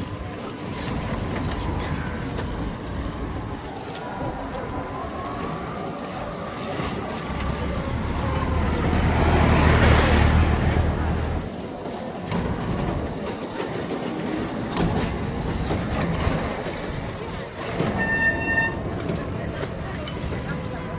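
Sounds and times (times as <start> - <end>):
street noise: 0.0 - 20.9
vehicle passing with deep rumble: 6.7 - 11.5.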